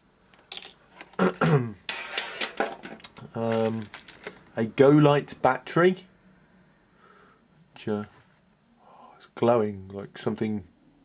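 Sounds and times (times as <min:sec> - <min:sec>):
person clearing throat: 0:01.2 - 0:01.8.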